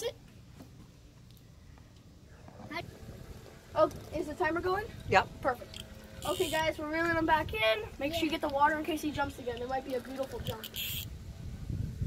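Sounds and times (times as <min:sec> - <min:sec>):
person speaking: 0:03.8 - 0:07.1.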